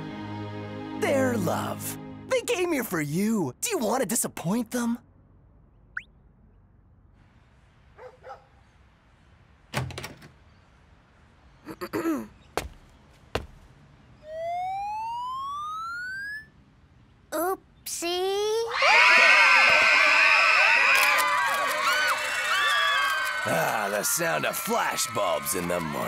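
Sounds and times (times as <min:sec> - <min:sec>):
throat clearing: 0:11.7 - 0:12.4
rising electronic whine: 0:14.2 - 0:16.5.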